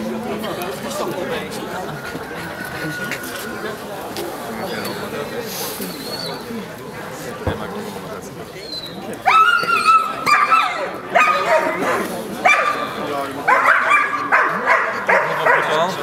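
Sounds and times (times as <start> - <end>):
dog yelping barks: 9.3 - 12.9, 13.5 - 15.8.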